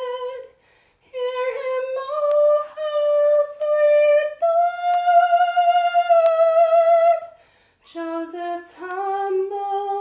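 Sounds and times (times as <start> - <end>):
woman singing a hymn: 0.0 - 10.0.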